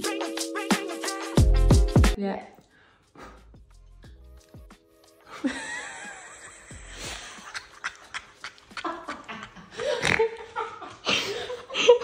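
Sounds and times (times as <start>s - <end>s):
woman laughing: 5.3s - 12.0s.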